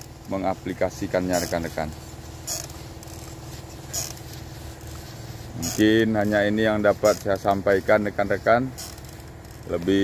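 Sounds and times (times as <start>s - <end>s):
sprayer nozzle hissing: 0.0s - 10.0s
steady low hum: 0.0s - 10.0s.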